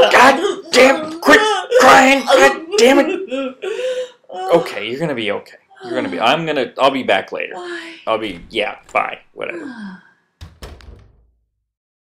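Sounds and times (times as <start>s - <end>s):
door rattle: 10.4s - 11.4s
door shutting thud: 10.4s - 11.4s.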